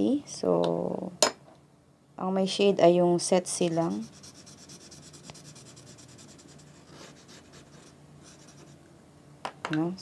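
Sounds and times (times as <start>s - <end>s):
marker shading on paper: 3.6s - 8.8s.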